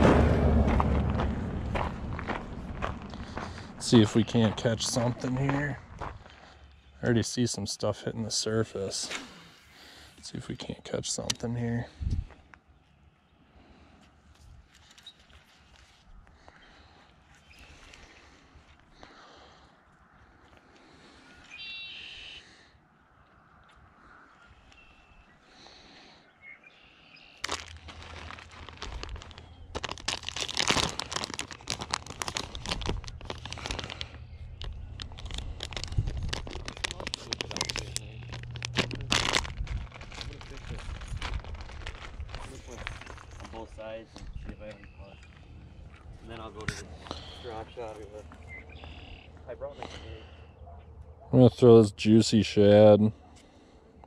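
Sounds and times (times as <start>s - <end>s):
wind rumble on microphone: 0.0s - 5.0s, 11.9s - 12.3s, 32.0s - 43.5s
plastic package crinkling: 3.0s - 5.4s, 27.4s - 43.6s
faint bird chirps: 21.2s - 22.6s, 23.4s - 25.4s, 44.3s - 45.4s, 48.4s - 49.6s.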